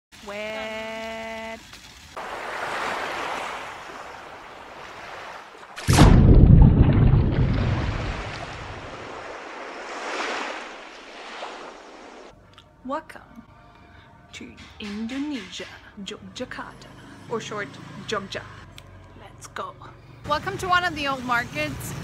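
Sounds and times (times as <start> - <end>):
surf washing: 2.1 - 12.3
plunge into water: 2.2 - 12.2.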